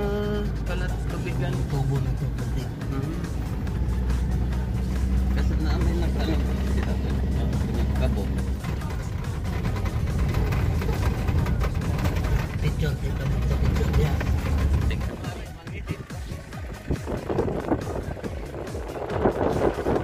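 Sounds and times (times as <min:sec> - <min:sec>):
music: 0:00.0 - 0:20.0
rattles from bumpy surface: 0:00.0 - 0:20.0
vehicle engine and road rumble: 0:00.0 - 0:20.0.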